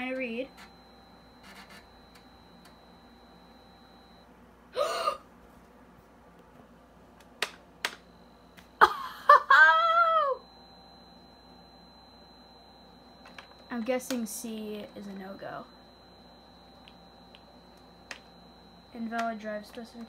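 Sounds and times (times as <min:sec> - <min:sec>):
faint high steady whine: 0:00.0 - 0:20.0.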